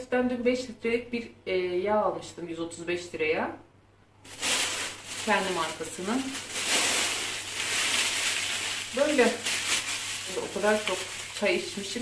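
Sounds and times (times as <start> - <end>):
plastic bag rustling: 4.3 - 12.0.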